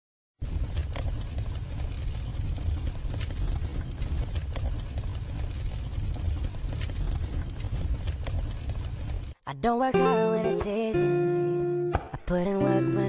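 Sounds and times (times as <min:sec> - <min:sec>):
sharp clicks: 0:00.7 - 0:09.3.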